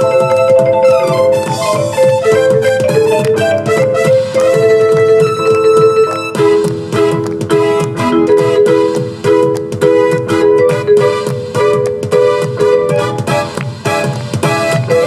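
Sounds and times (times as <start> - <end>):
electronic vibraphone notes: 0.0 - 6.3, 7.5 - 13.3
rhythmic accompaniment with beat: 0.0 - 15.0.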